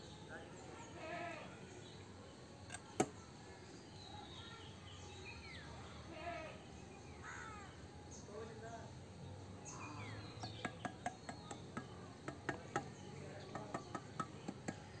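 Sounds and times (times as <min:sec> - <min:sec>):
trowel tapping on wet concrete: 0:10.4 - 0:15.0.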